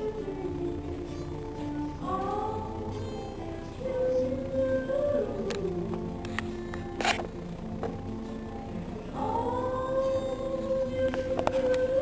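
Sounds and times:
person singing a long high note: 0.0s - 6.4s, 9.1s - 12.0s
quiet acoustic accompaniment: 0.0s - 12.0s.

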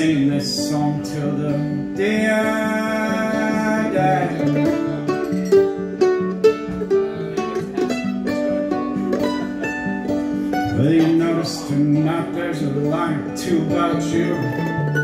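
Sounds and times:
person singing: 0.0s - 5.4s, 10.5s - 15.0s
mandolin picking quick notes: 0.0s - 15.0s
strummed acoustic guitar: 0.0s - 15.0s.

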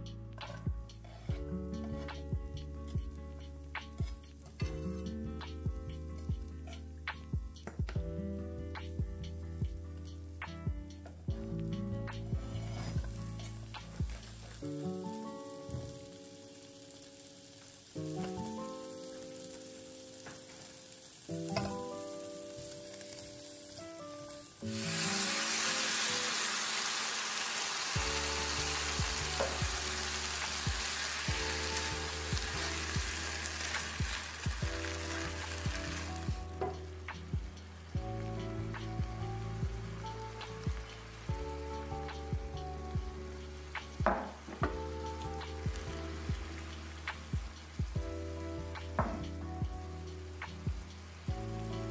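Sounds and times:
background music: 0.0s - 51.9s
loud sizzling hiss: 0.0s - 51.9s
food sizzling in a pan: 0.4s - 51.9s.

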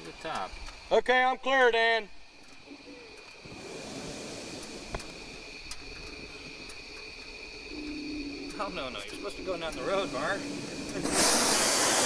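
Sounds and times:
people talking: 0.0s - 2.1s, 8.5s - 11.7s
propane burner hissing: 0.0s - 12.0s.

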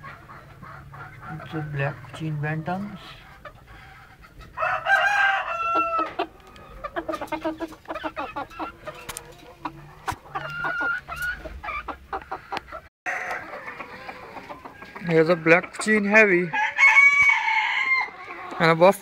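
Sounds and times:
hens clucking: 0.0s - 19.0s
rooster crowing: 4.6s - 6.2s, 13.1s - 14.4s, 16.5s - 18.2s.

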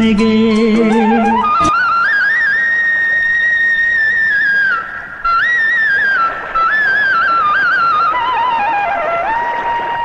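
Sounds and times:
flute playing: 0.6s - 10.0s.

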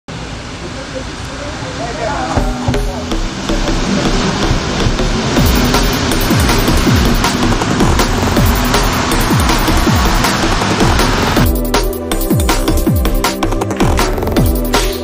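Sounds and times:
falling bass sweep: 2.2s - 12.9s
electronic dance music: 2.4s - 15.0s.

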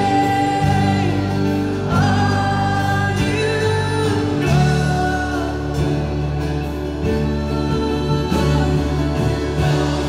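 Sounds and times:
women singing: 0.0s - 6.0s, 7.0s - 10.0s
worship band playing: 0.0s - 10.0s.

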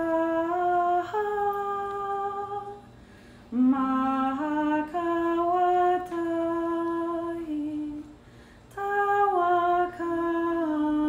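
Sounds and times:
person humming a slow melody: 0.0s - 2.9s, 3.5s - 11.0s.

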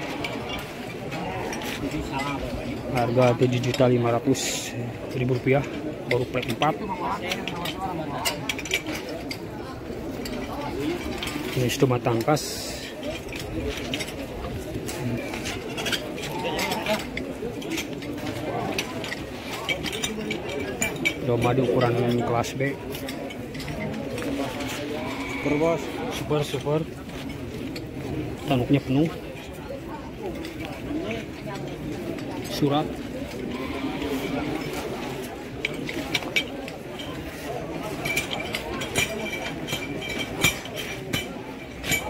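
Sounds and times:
indistinct background voices: 0.0s - 42.0s
people talking: 0.0s - 42.0s.

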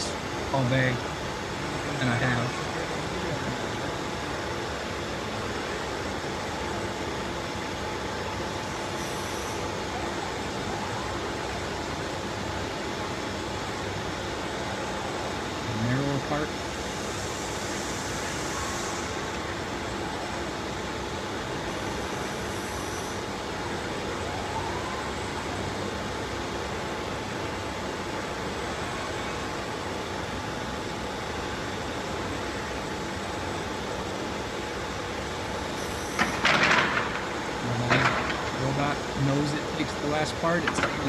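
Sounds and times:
voices: 0.0s - 6.0s, 37.4s - 41.0s
faint hum: 0.0s - 41.0s
machinery and ventilation running: 0.0s - 41.0s.

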